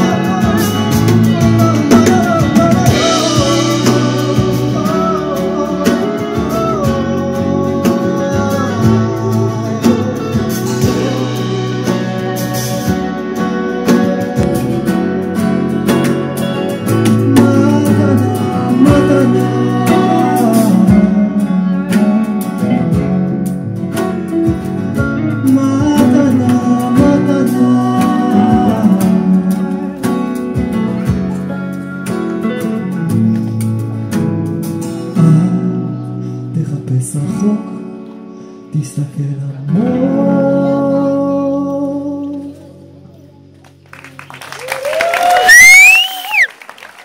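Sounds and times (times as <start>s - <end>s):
acoustic and electric guitars: 0.0s - 47.0s.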